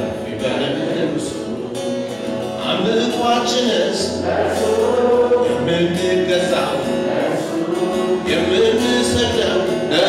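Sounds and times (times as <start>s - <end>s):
voices singing gospel song: 0.0s - 1.9s, 2.6s - 10.0s.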